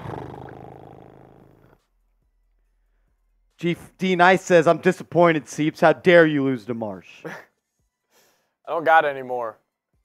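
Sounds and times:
man belching: 0.0s - 1.6s.

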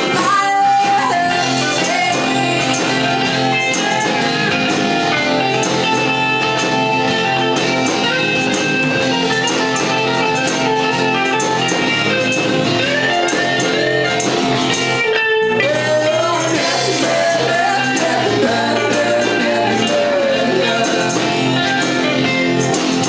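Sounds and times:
bass guitar: 0.0s - 23.0s
drum kit beat: 0.0s - 23.0s
electric lead guitar: 0.0s - 23.0s.

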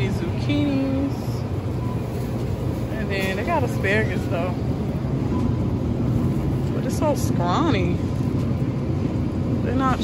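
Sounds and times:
supermarket background rumble and hiss: 0.0s - 10.0s.

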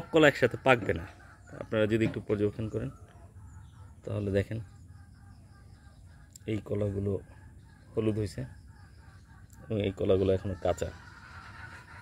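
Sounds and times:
chicken clucking: 0.0s - 12.0s.

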